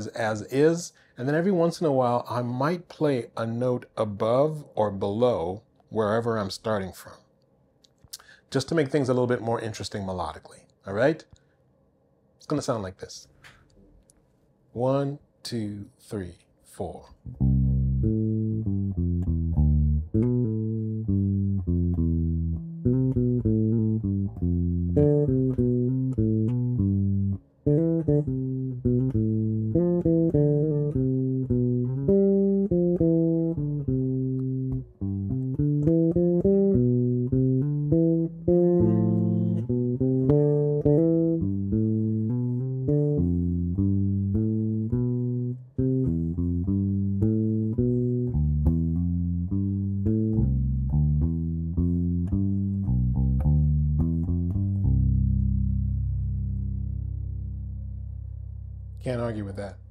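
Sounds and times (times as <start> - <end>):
electric bass plucked notes: 17.2 - 59.9.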